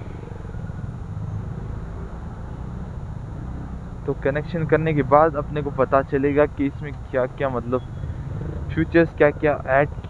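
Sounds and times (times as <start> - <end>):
scooter engine low rumble: 0.0 - 10.0.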